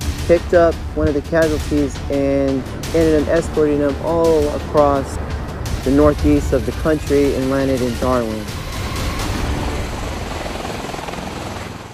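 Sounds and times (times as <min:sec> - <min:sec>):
tiltrotor aircraft hovering: 0:00.0 - 0:11.9.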